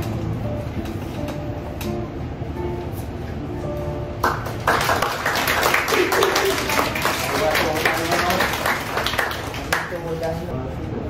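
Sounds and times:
acoustic guitar and ukuleles: 0.0 - 4.6
applause: 4.2 - 10.4.

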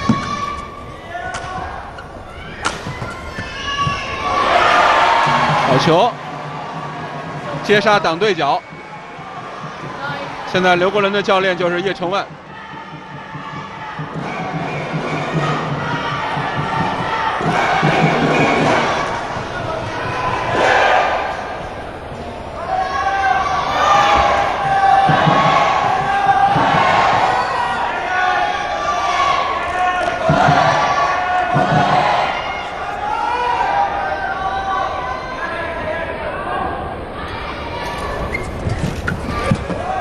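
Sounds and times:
arena crowd chanting and cheering: 0.0 - 40.0.

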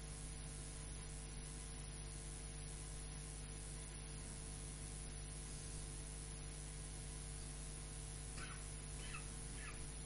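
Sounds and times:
faint animal calls: 8.3 - 10.0.

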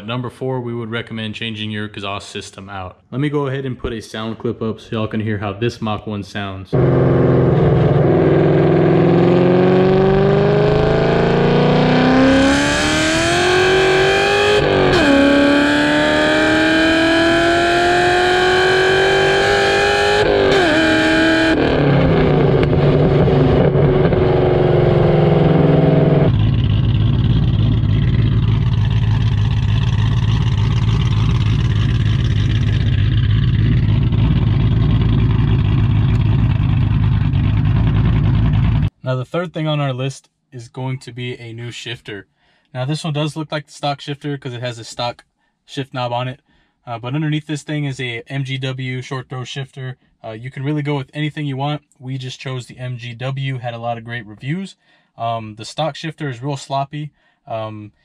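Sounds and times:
car engine accelerating: 6.8 - 38.9.

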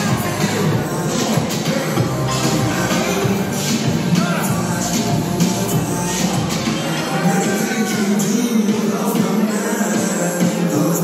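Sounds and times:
hip-hop music with heavy bass: 0.0 - 11.0.

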